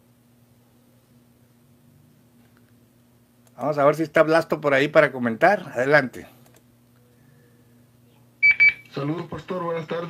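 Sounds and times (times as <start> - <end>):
faint low hum: 0.0 - 10.0
short electronic beeps: 8.4 - 8.9.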